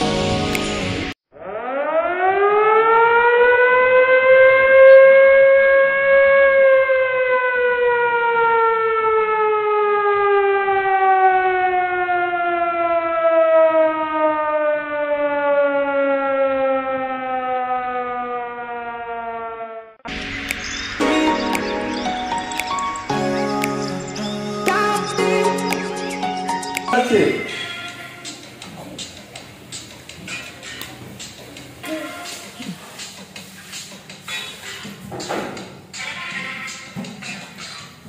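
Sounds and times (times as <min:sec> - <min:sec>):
siren winding up and down: 0:01.3 - 0:26.8.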